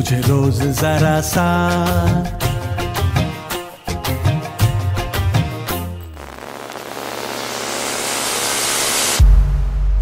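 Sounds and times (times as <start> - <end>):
white-noise riser: 6.0 - 10.0
deep bass boom: 9.2 - 10.0.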